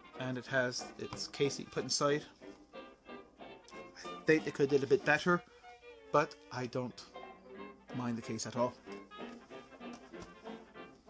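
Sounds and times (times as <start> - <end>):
quiet brass background music: 0.0 - 11.0.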